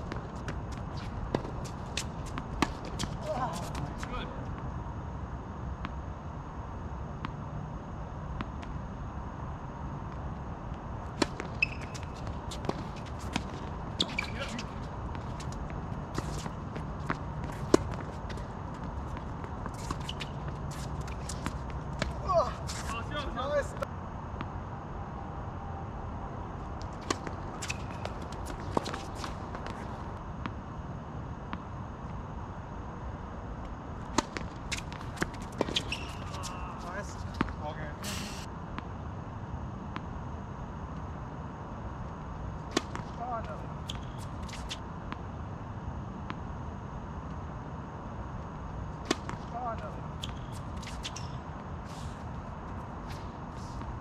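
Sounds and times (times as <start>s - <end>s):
tennis balls bouncing: 0.0s - 4.7s, 10.1s - 23.0s, 26.8s - 30.6s, 33.6s - 37.6s, 49.0s - 51.5s
rackets hitting tennis balls: 11.1s - 23.4s, 26.8s - 30.1s, 34.0s - 38.5s, 49.0s - 51.5s.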